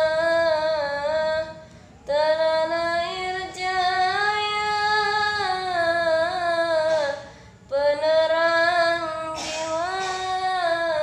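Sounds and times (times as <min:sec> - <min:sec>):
boy singing unaccompanied: 0:00.0 - 0:11.0
quick breath: 0:07.2 - 0:07.7.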